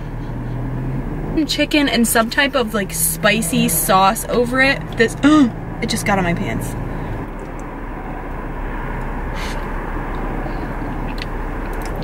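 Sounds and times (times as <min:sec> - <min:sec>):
vehicle interior rumble and hiss: 0:00.0 - 0:12.0.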